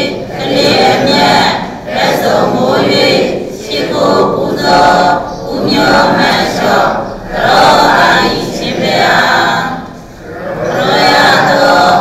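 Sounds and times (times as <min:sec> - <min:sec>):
group chanting in unison: 0:00.0 - 0:12.0.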